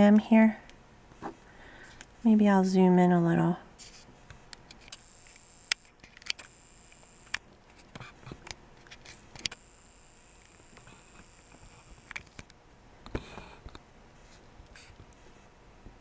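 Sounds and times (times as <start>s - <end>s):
low background hiss: 0.0s - 7.7s
video camera clicks and taps: 4.6s - 9.6s, 10.4s - 13.8s.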